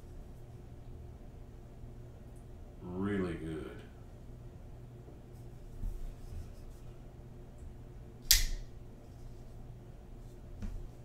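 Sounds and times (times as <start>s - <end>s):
knife blade locking click: 8.3s - 8.6s.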